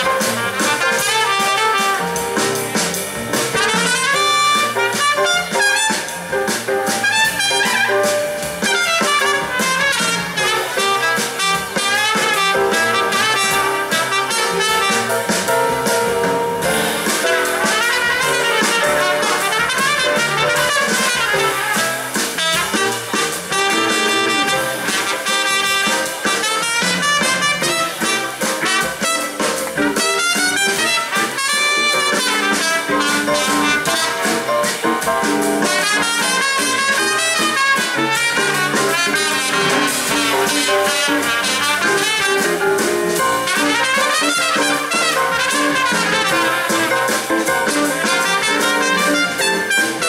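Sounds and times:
jazz-funk band playing: 0.0s - 50.0s
trumpet: 0.0s - 50.0s.

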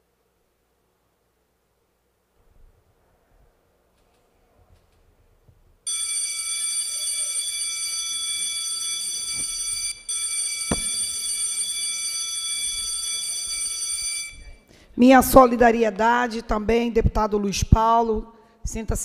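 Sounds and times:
electronic buzzer high tone: 5.9s - 14.4s.

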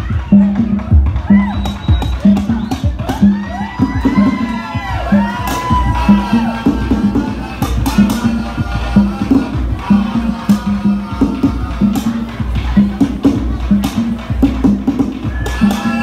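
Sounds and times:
crowd whooping and cheering: 0.0s - 13.8s, 15.1s - 16.0s
rumba drumming: 0.0s - 16.0s.

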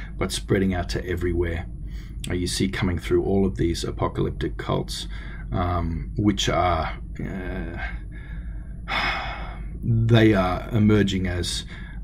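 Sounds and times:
man talking: 0.0s - 1.6s, 2.2s - 8.0s, 9.4s - 11.8s
low electrical hum: 0.0s - 12.0s
man inhaling: 1.8s - 2.2s, 5.1s - 5.5s, 7.8s - 9.8s, 11.6s - 12.0s.

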